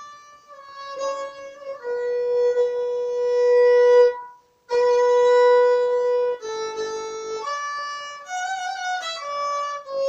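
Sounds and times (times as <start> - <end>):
violin long bowed note: 0.0 - 10.0.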